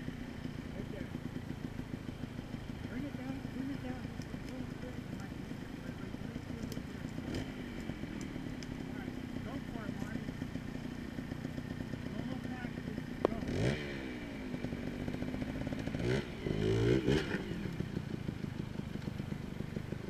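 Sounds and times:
motorcycle engine idling and revving: 0.0 - 20.0.

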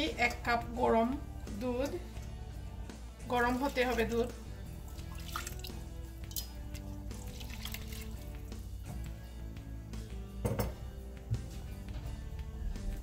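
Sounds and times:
background music with held notes: 0.0 - 13.0
milk pouring into a metal pot: 3.4 - 8.6.

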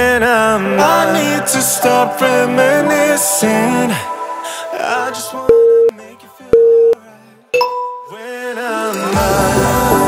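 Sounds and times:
background music: 0.0 - 10.0
electronic timer beeps: 5.5 - 5.9, 6.5 - 7.0, 7.6 - 8.1.

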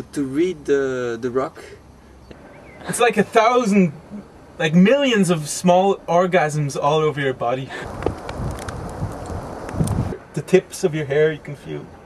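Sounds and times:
wind rushing over microphone: 7.7 - 10.3.

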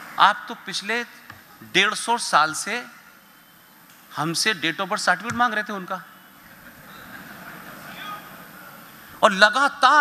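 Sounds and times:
venue ambience: 0.0 - 10.0.

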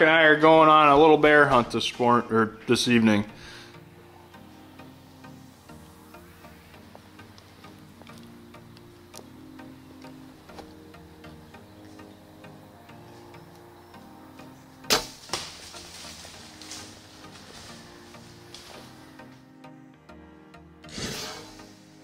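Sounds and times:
soft background music: 0.0 - 22.0
quiet arrow knock: 14.9 - 15.6.

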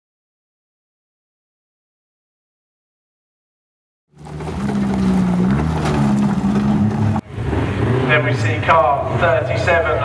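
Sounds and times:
race car engines running: 4.1 - 10.0.

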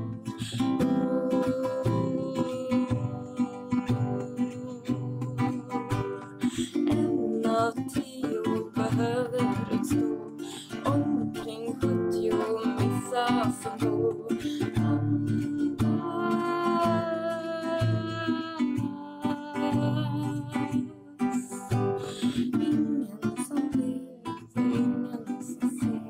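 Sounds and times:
acoustic guitar strumming: 0.0 - 26.0
person singing: 0.0 - 26.0.

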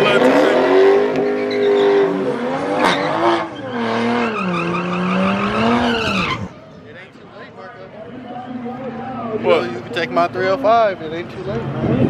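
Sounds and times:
car engine accelerating: 0.0 - 6.7.

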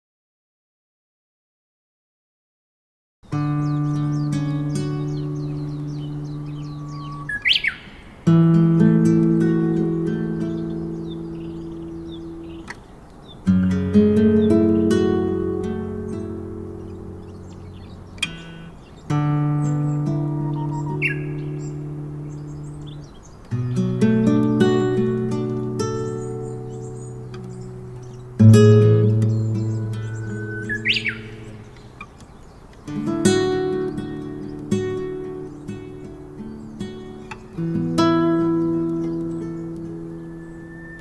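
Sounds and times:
classical guitar chords: 3.3 - 41.0
bird whistling song: 3.6 - 8.2, 9.2 - 41.0.

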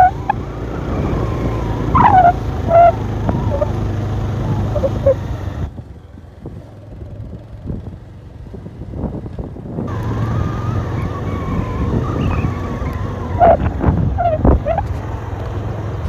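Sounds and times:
wind buffeting microphone: 0.0 - 15.0
vehicle engine driving: 0.0 - 16.0.

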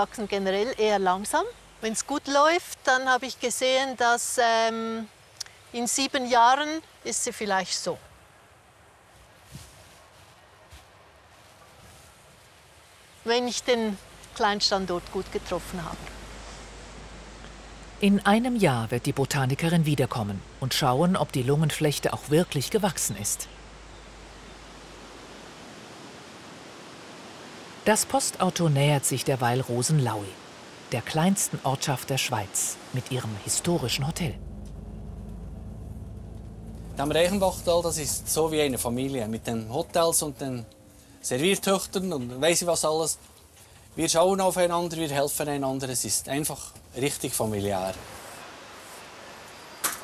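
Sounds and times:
low hum: 14.0 - 27.3, 28.0 - 41.4
outdoor rushing ambience: 14.2 - 28.4, 29.2 - 41.0.

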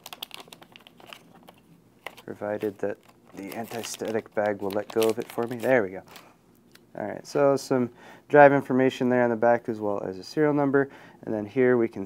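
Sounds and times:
anti-static bag crinkling: 0.0 - 6.9.

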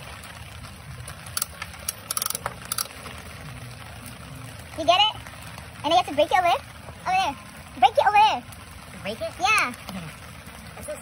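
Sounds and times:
rain hiss: 0.0 - 11.0
vending machine crank clicking: 1.4 - 2.9.

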